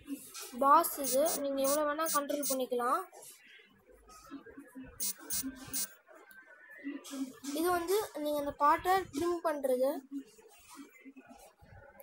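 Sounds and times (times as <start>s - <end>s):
person talking: 0.6s - 3.0s.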